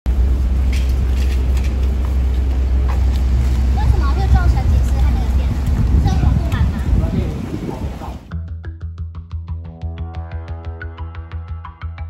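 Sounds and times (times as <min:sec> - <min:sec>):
steady low rumble: 0:00.1 - 0:08.3.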